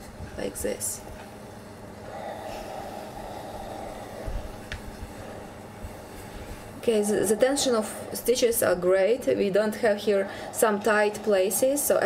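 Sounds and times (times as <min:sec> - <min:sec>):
steam iron rubbing and steaming: 0:02.1 - 0:12.0.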